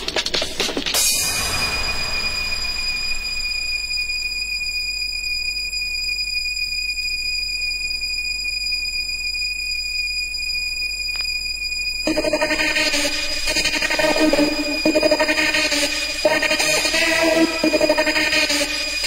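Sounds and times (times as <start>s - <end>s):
high-pitched electronic tone: 1.0s - 4.8s, 12.0s - 19.0s.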